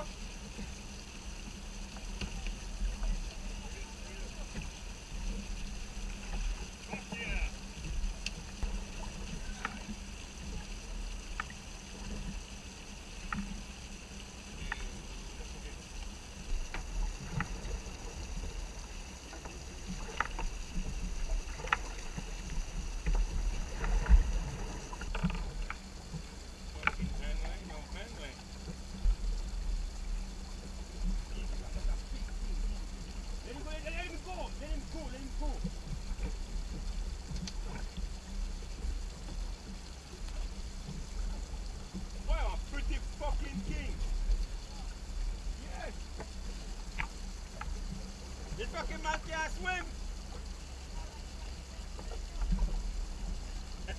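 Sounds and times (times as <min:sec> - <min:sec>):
water washing against boat: 0:00.0 - 0:53.9.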